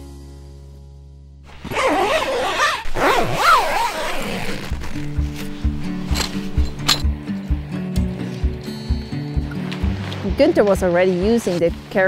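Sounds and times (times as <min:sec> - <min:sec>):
tent zipper being pulled: 0:01.5 - 0:07.0.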